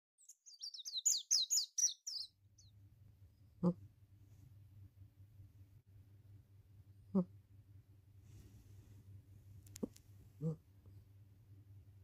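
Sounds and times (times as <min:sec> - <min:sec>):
bird chirping: 0:00.2 - 0:02.8
faint low hum: 0:02.1 - 0:12.0.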